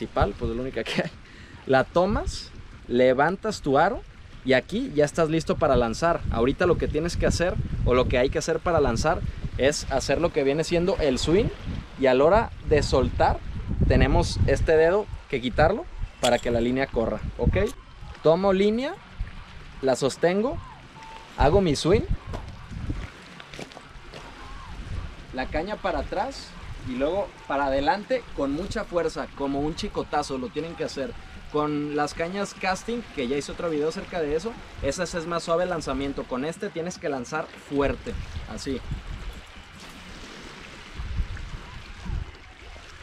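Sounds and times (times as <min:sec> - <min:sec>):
wind rumbling on microphone: 0:00.0 - 0:19.8, 0:20.5 - 0:30.2, 0:37.8 - 0:43.0
lapping lake water: 0:00.0 - 0:43.0
waves washing on stony shore: 0:37.5 - 0:43.0.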